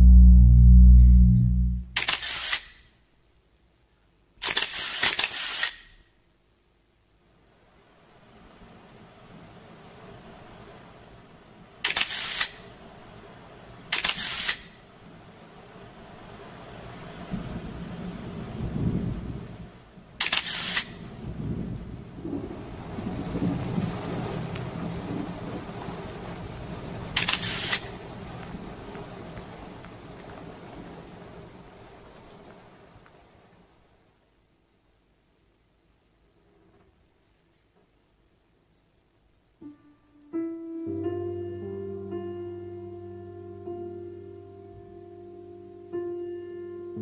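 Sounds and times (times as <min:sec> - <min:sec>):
low rumble: 0:00.0 - 0:02.1
loud bursts of hiss: 0:27.2 - 0:27.9.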